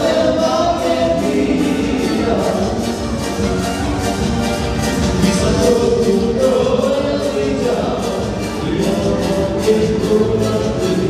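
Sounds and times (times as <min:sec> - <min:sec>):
live dance band with singing: 0:00.0 - 0:11.0.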